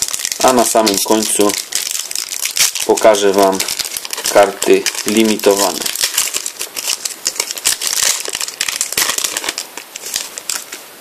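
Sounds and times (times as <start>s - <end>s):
foil wrapper tearing and crinkling: 0.0s - 10.8s.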